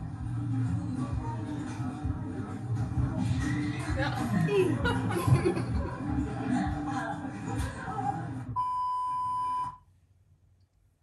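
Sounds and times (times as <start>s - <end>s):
music: 0.0s - 8.6s.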